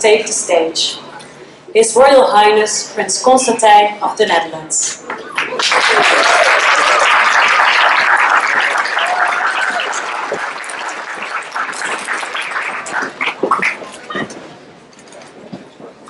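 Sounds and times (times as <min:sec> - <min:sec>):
audience applauding: 0:05.2 - 0:14.2.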